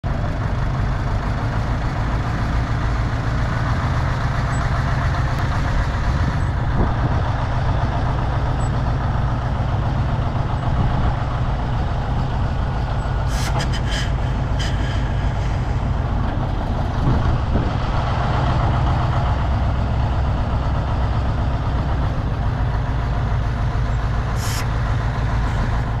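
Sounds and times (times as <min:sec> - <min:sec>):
diesel engine running: 0:00.0 - 0:26.0.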